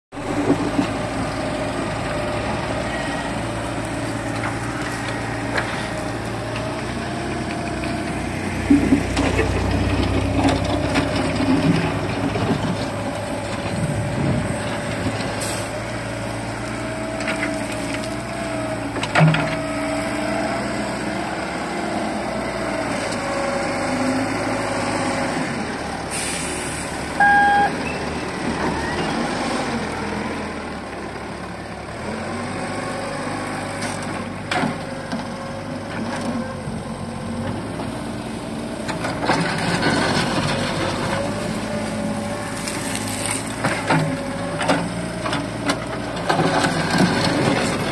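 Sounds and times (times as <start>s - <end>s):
excavator diesel engine running: 0.2s - 47.9s
short beep: 27.2s - 28.0s.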